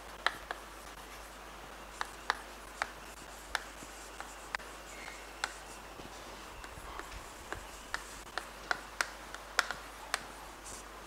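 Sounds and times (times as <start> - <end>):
chalk tapping on blackboard: 0.0 - 10.9
chalk scraping: 0.3 - 8.5, 9.3 - 10.9.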